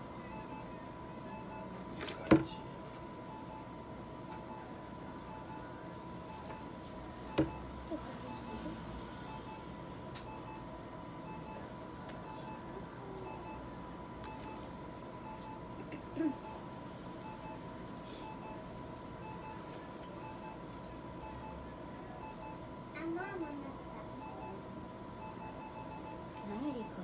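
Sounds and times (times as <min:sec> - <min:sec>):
faint electronic beeping: 0:00.1 - 0:27.0.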